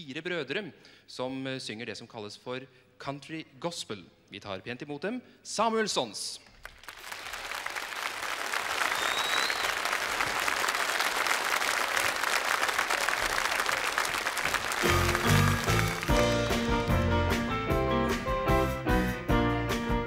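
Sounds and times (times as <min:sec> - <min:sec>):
audience applauding: 0:06.6 - 0:17.5
country-gospel band playing: 0:14.8 - 0:20.0.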